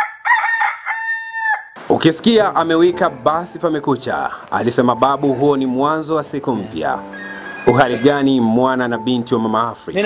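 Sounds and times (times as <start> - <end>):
rooster crowing: 0.0 - 1.8, 7.1 - 7.7.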